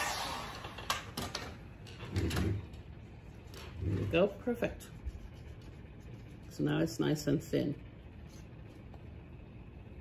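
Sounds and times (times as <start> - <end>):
heat gun running: 0.0 - 1.1.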